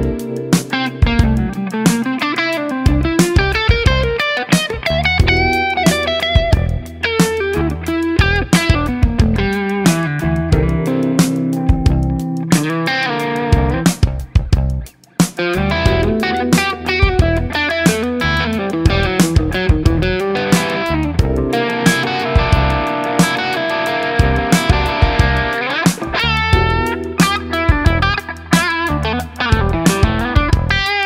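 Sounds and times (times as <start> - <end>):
overdriven electric guitar lead: 0.0 - 31.0.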